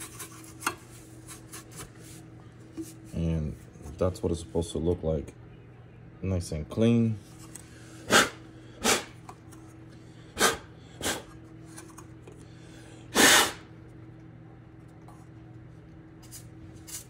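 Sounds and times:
steady low hum: 0:00.0 - 0:17.0
sharp puffs of air: 0:13.1 - 0:13.7.

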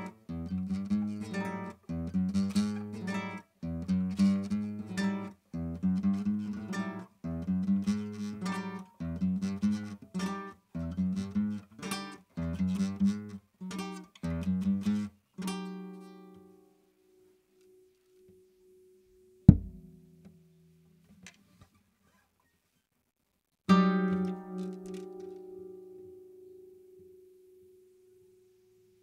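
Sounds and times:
strummed guitar chords: 0:19.5 - 0:19.9.

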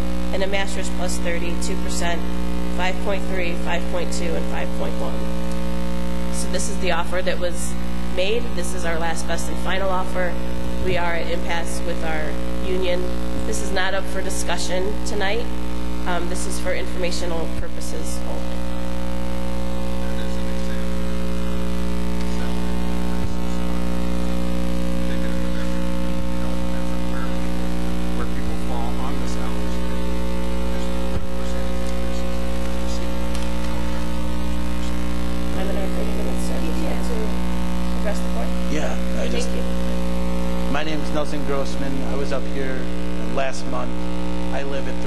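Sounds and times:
electrical mains hum: 0:00.0 - 0:45.0.

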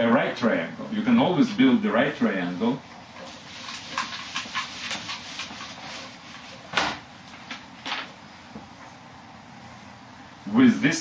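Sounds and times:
eraser rubbing on whiteboard: 0:03.2 - 0:06.7.

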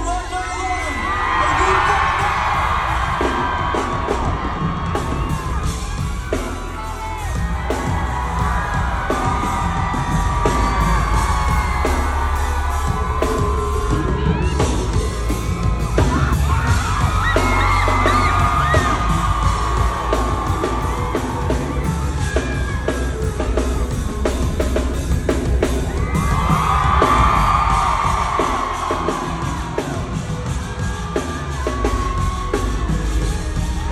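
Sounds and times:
crowd screaming and cheering: 0:00.0 - 0:33.9
live band with heavy bass: 0:00.0 - 0:33.9.

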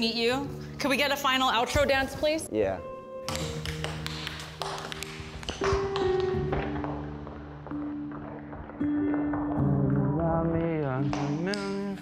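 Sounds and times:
background music with held notes: 0:00.0 - 0:12.0
tap shoes on hardwood floor: 0:03.3 - 0:09.6.

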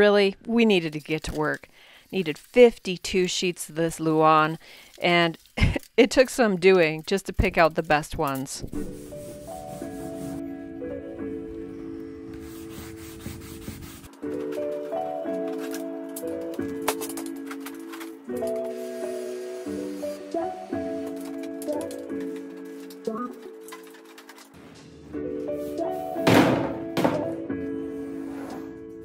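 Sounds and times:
background music sustained notes: 0:08.7 - 0:29.0
rag swishing on wood: 0:08.8 - 0:10.4
plywood sheet thudding on stack: 0:26.2 - 0:27.4.

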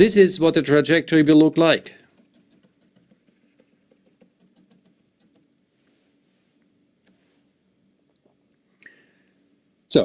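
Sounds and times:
stylus tapping on tablet: 0:02.1 - 0:05.5.

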